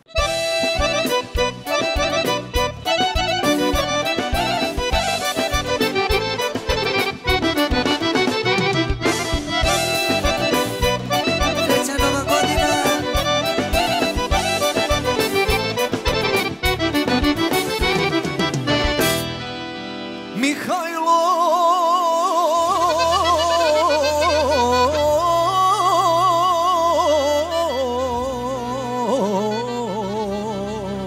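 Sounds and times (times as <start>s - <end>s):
folk band playing: 0.0s - 21.4s, 22.1s - 31.0s
accordions: 0.0s - 31.0s
steady drum beat: 0.2s - 19.3s.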